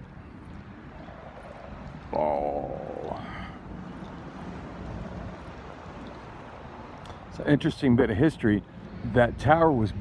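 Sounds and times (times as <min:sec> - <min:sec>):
outdoor background noise: 0:00.0 - 0:10.0
wind rumbling on microphone: 0:00.0 - 0:10.0.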